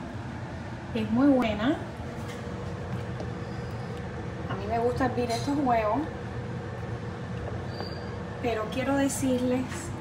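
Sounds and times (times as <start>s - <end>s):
water heating rumble: 0.0s - 10.0s.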